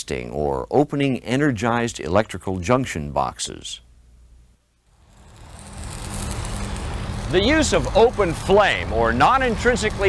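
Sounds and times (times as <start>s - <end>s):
low machinery hum: 3.9s - 10.0s
broad hiss: 4.9s - 10.0s.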